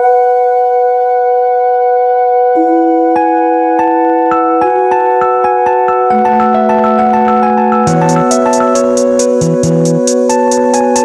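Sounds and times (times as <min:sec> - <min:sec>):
sustained synthesizer tone: 0:02.6 - 0:10.0.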